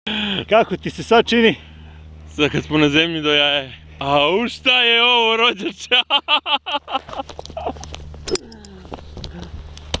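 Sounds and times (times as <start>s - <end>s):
steady low rumble: 0.1s - 10.0s.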